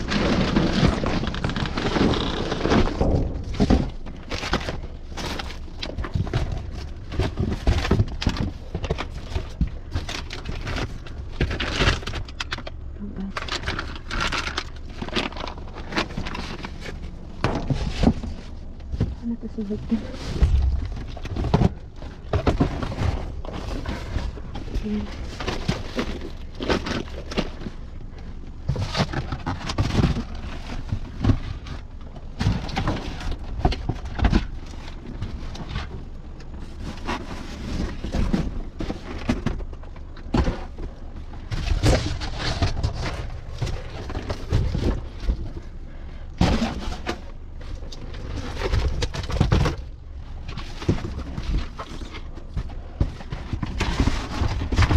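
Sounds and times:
cardboard boxes shifted by hand: 0:00.0 - 0:12.5, 0:13.3 - 0:54.9
plastic wrap rustling and crackling: 0:00.0 - 0:45.8
low handling rumble: 0:00.0 - 0:54.9
dull thuds: 0:15.3 - 0:27.6.

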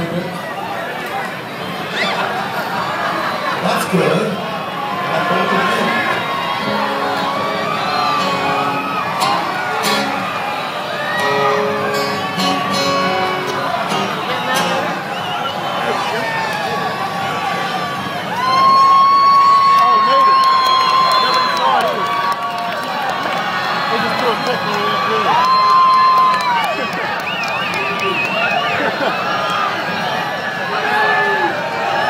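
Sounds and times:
crowd cheering and whooping: 0:00.1 - 0:32.0
band with acoustic guitars: 0:05.9 - 0:17.0.

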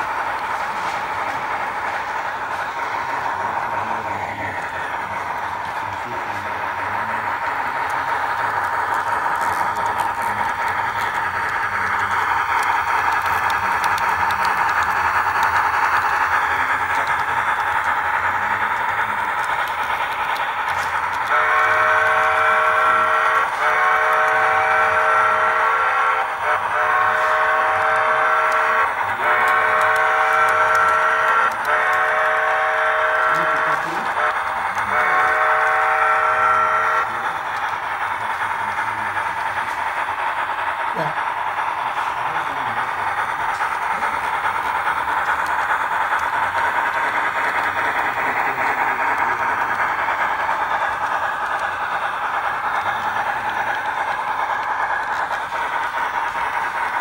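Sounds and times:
model train motor whine: 0:00.0 - 0:57.0
multi-note train whistle: 0:20.7 - 0:37.3.

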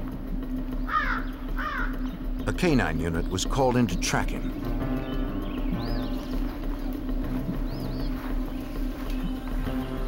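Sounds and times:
bird harsh calls: 0:00.4 - 0:10.0.

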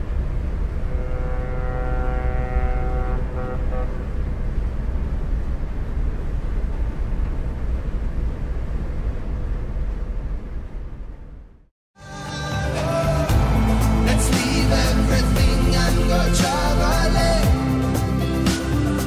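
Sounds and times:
pitched whine: 0:00.0 - 0:11.6
low engine rumble: 0:00.0 - 0:18.4.

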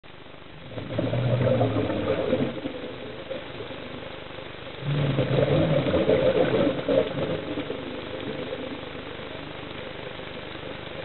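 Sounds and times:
faint water hiss: 0:00.0 - 0:11.0
regulator bubbles underwater: 0:00.0 - 0:11.0.

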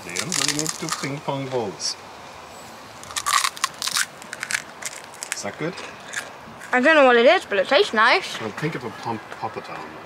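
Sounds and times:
crunching bite of fried shell: 0:03.0 - 0:05.4.

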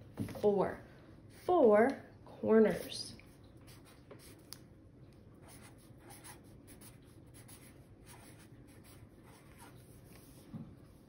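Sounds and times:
marker scratching on paper: 0:03.6 - 0:04.5, 0:05.4 - 0:10.4.

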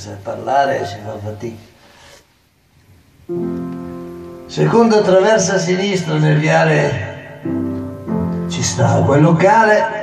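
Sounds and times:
piano chord: 0:03.3 - 0:10.0.

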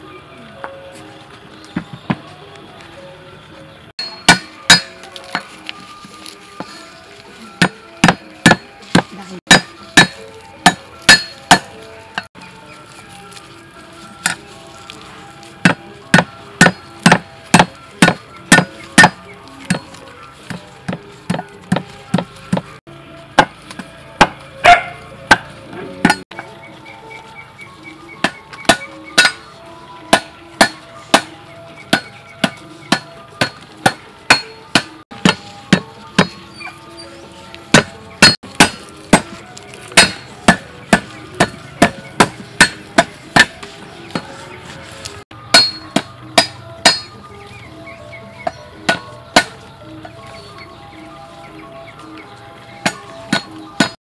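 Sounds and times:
soft background music: 0:00.0 - 0:54.0
cleaver chopping on wooden block: 0:04.0 - 0:05.0, 0:07.6 - 0:11.7, 0:15.6 - 0:19.8, 0:20.5 - 0:22.7, 0:23.4 - 0:25.4, 0:28.2 - 0:29.4, 0:30.1 - 0:31.3, 0:31.9 - 0:36.4, 0:37.7 - 0:39.4, 0:40.0 - 0:44.3, 0:45.5 - 0:47.1, 0:48.9 - 0:49.6.

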